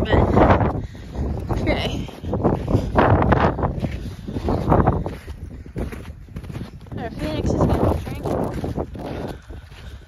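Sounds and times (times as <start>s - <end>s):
hooves on snow: 0.0s - 10.0s
wind rumbling on microphone: 0.0s - 10.0s.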